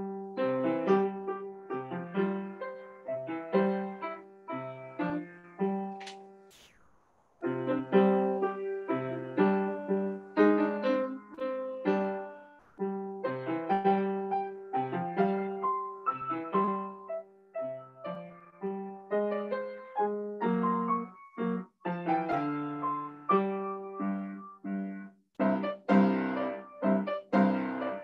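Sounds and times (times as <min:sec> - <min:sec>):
upright piano playing: 0:00.0 - 0:05.9, 0:07.6 - 0:28.0.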